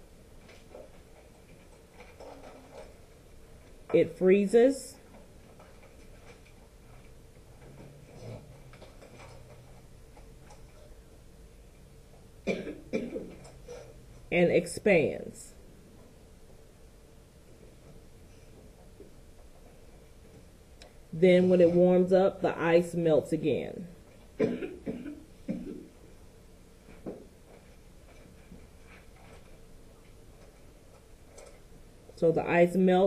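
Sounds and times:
faint room hum: 0:00.0 - 0:33.0
person coughing: 0:12.5 - 0:13.9, 0:24.4 - 0:25.9.

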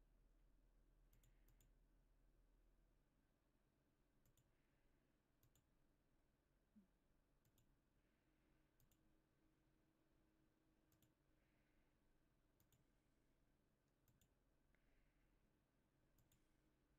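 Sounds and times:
low room hum: 0:00.0 - 0:16.9
computer mouse clicks: 0:01.1 - 0:01.7, 0:04.2 - 0:04.5, 0:05.4 - 0:05.7, 0:07.4 - 0:07.7, 0:08.8 - 0:09.0, 0:10.9 - 0:11.2, 0:12.6 - 0:12.9, 0:14.0 - 0:14.8, 0:16.2 - 0:16.5.

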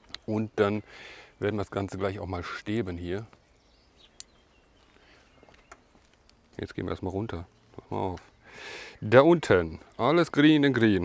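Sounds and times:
faint sharp clicks: 0:04.1 - 0:06.6.

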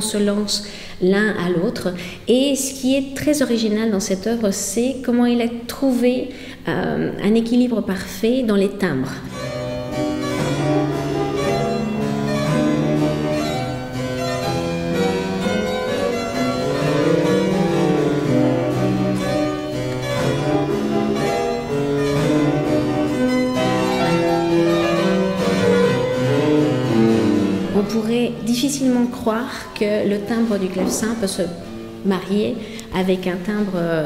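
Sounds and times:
harpsichord and fortepiano duet: 0:09.2 - 0:32.6.

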